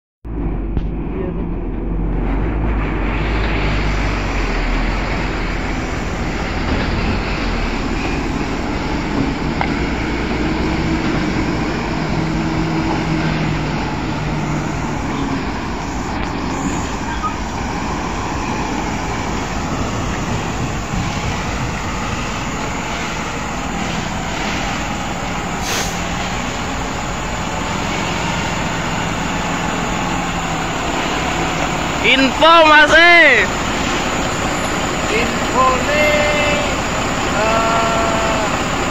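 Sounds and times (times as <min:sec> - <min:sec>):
diesel truck engine rumbling: 0:00.2 - 0:38.9.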